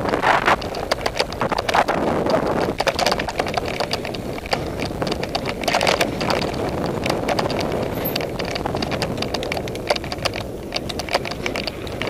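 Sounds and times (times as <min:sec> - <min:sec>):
bike rattling and clacking: 0:00.0 - 0:12.0
tyres rolling over dirt and rocks: 0:00.0 - 0:12.0
wind on microphone: 0:00.0 - 0:12.0.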